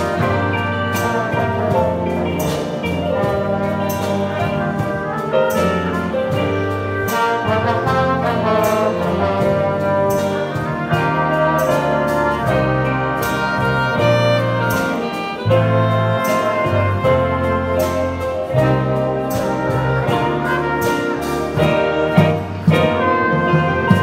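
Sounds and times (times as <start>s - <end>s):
saxophones: 0.0s - 24.0s
trombones: 0.0s - 24.0s
trumpets: 0.0s - 24.0s.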